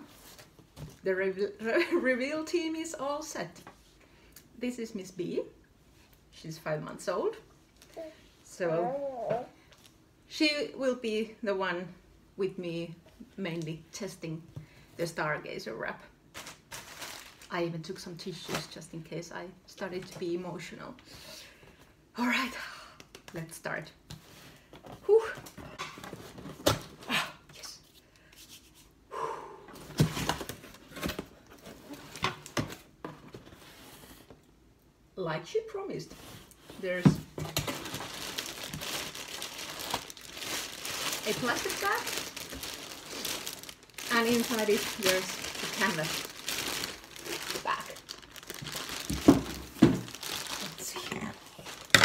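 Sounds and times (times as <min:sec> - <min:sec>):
plastic bag crinkling: 0:16.3 - 0:17.6, 0:36.8 - 0:52.0
person exhaling: 0:29.1 - 0:29.8.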